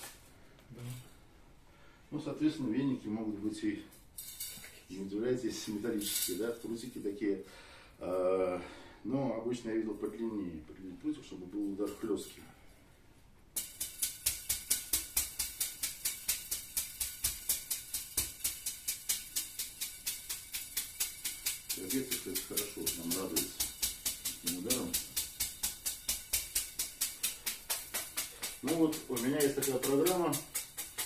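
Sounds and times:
metal whisk slapping a clothed back: 0:13.6 - 0:31.0.

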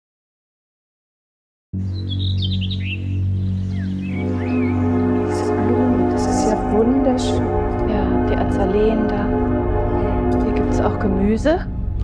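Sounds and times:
small birds chirping: 0:01.8 - 0:05.6
low musical drone: 0:01.8 - 0:12.0
sustained chord: 0:01.8 - 0:12.0.

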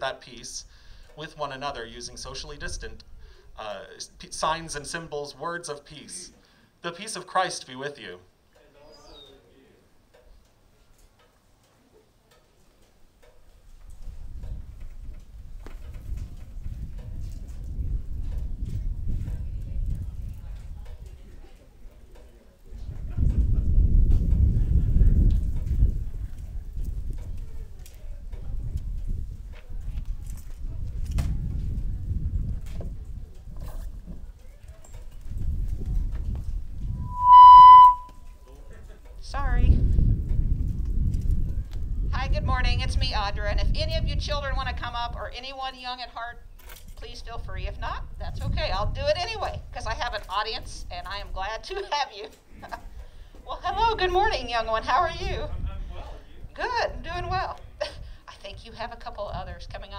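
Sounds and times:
open-air noise: 0:00.0 - 0:59.9
faint irregular clicks and taps: 0:10.1 - 0:16.3
microphone feedback squeal: 0:36.9 - 0:38.5
low rumble: 0:37.0 - 0:38.1.

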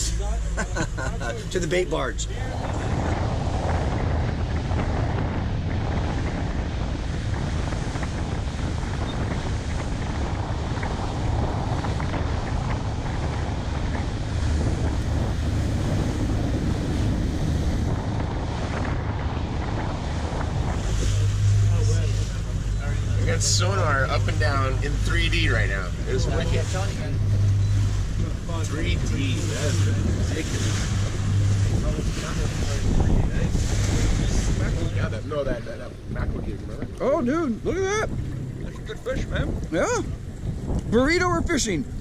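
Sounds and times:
boat engine drone: 0:00.0 - 0:42.0
rush of wake: 0:00.0 - 0:42.0
wind buffeting microphone: 0:00.0 - 0:42.0.

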